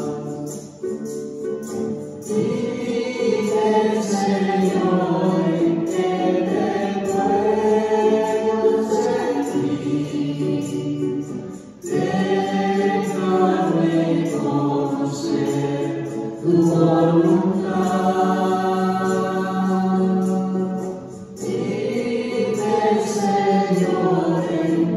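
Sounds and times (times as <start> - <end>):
congregation singing a hymn: 0.0 - 1.2, 2.2 - 24.9
man singing into a microphone: 12.8 - 20.8.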